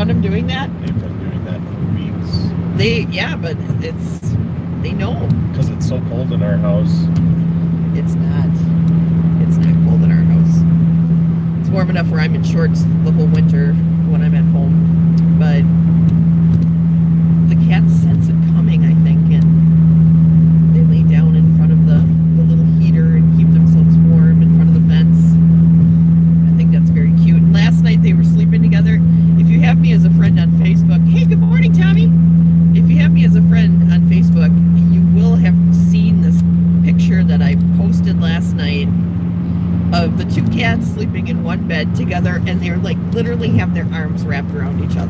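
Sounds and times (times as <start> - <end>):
car engine and road noise: 0.0 - 45.0.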